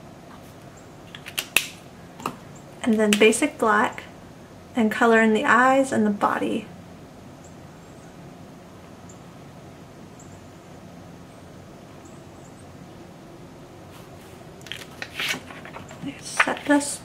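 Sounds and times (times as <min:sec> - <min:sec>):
low room hum: 0:00.0 - 0:17.0
rustle and clicks: 0:13.9 - 0:17.0.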